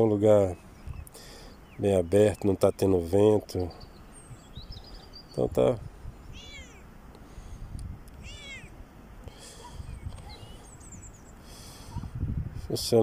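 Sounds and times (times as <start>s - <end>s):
cat meowing: 6.3s - 6.8s, 8.2s - 8.8s.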